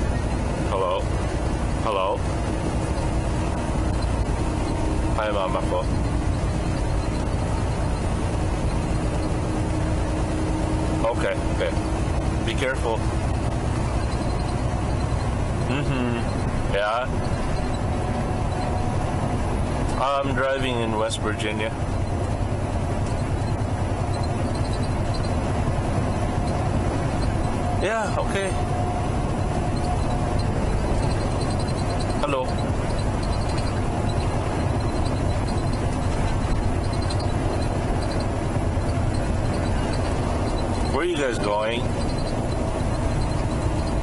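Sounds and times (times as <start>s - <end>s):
road rumble: 0.0s - 44.0s
truck engine drone: 0.0s - 44.0s.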